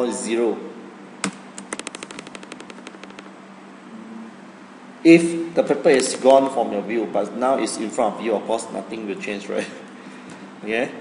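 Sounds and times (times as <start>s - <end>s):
faint steady hum: 0.0s - 11.0s
fast run of light clicks: 1.2s - 3.4s.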